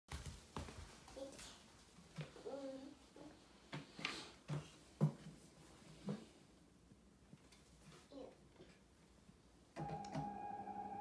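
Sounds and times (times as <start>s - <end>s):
toddler vocal sound: 2.4s - 3.4s.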